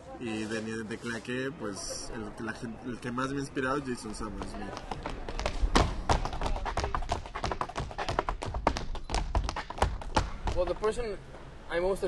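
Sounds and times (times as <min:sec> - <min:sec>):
tap shoes on wooden boards: 0:04.0 - 0:11.0.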